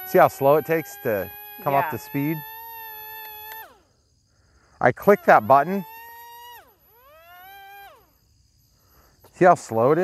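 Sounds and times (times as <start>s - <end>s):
electric motors and propellers whining: 0.0s - 4.1s, 4.8s - 8.3s.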